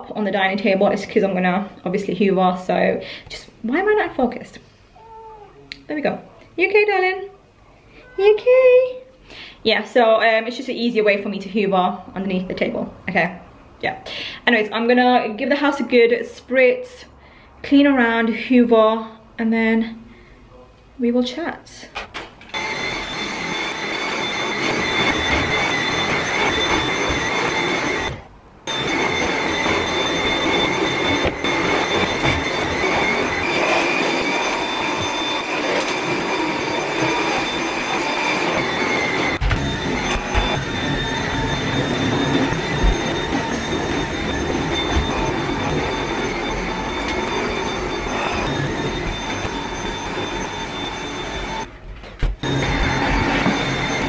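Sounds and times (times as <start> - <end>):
stick vacuum cleaner whining: 22.0 - 54.0.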